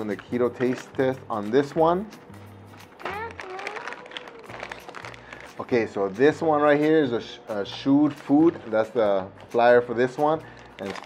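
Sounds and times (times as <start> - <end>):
paper packaging rustling: 0.0 - 1.9, 2.7 - 6.1, 10.4 - 11.0
child singing high note: 3.1 - 4.5.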